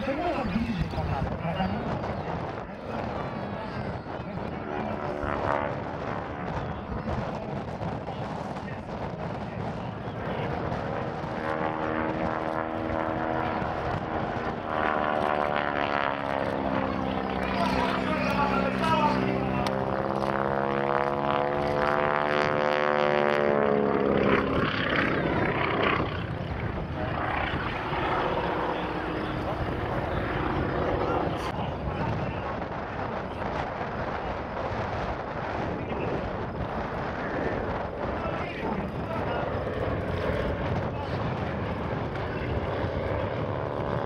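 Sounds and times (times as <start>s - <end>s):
propeller plane engine: 0.0s - 44.0s.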